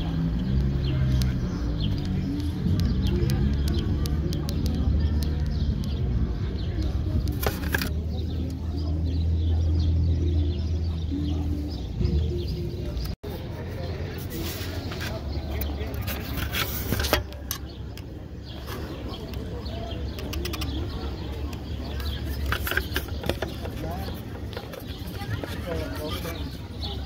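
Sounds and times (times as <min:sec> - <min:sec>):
indistinct voices: 0:00.0 - 0:27.0.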